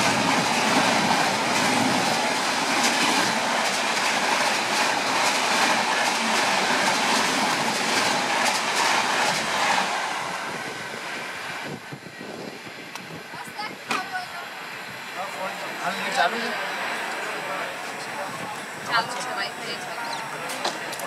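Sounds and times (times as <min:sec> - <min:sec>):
wheels clacking over rail joints: 0:00.0 - 0:10.1
train coaches rushing past: 0:00.0 - 0:21.0.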